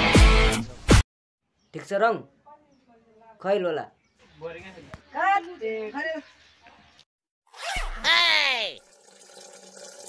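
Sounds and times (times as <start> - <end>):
zipper pulled down: 7.5 - 8.1.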